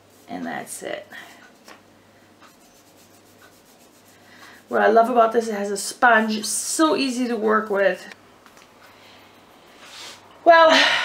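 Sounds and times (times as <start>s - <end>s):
sponge rubbing on wooden stick: 0.0s - 0.8s, 2.4s - 4.8s.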